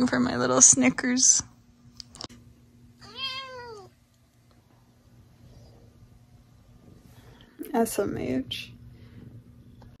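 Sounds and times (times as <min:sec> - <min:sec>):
cat meowing: 0:03.0 - 0:04.0.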